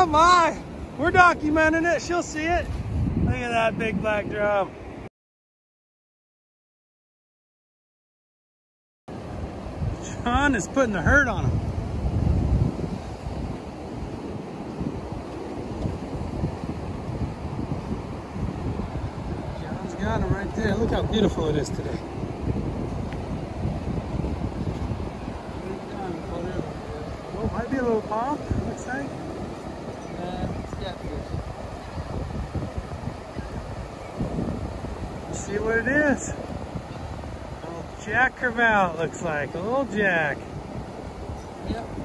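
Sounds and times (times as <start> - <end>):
ocean surf breaking: 0.0 - 5.1, 9.1 - 42.0
wind noise on microphone: 0.0 - 5.1, 9.1 - 42.0.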